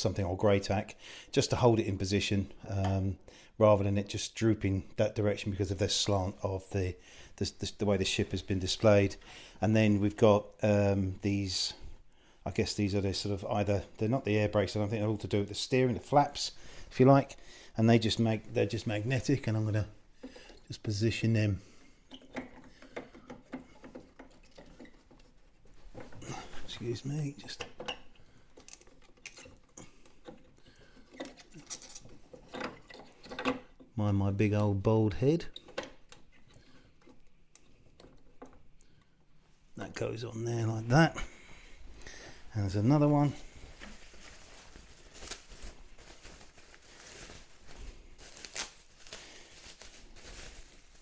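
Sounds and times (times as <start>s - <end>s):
plastic packaging rustling: 21.6s - 33.3s, 41.3s - 51.0s
breathy noise: 25.9s - 27.0s, 40.9s - 50.0s
plastic parts clicking: 27.4s - 33.9s.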